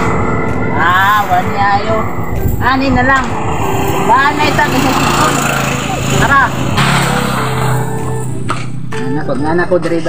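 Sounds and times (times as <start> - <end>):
vehicle engine passing by: 0.0 - 8.9.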